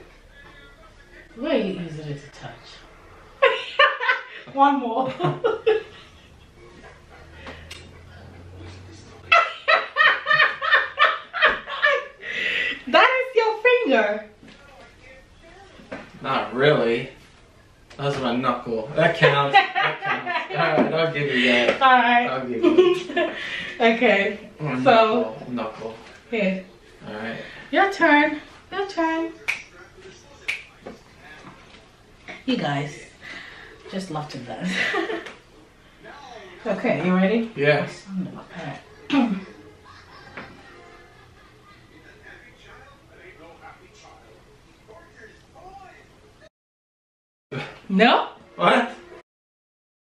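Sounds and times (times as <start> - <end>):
faint low murmurs: 5.6 - 9.4
sharp snap: 7.7 - 7.9, 29.5 - 29.7.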